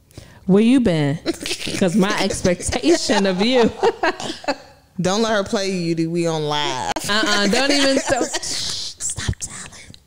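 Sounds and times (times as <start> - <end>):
women laughing into microphones: 1.3 - 4.7, 7.3 - 8.9.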